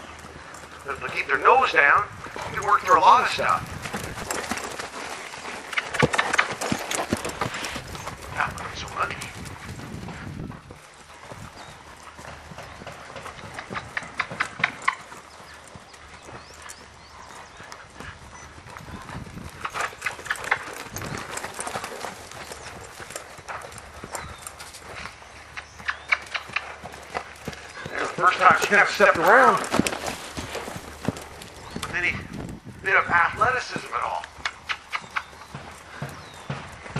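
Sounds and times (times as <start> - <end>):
horse hoofbeats on sand: 0.0 - 36.9.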